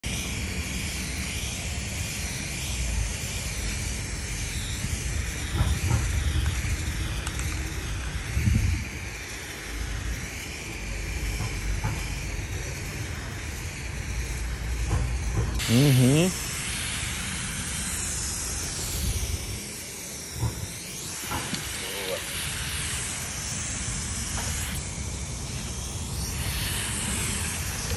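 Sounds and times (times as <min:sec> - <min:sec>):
spray paint can hissing: 0:00.0 - 0:27.9.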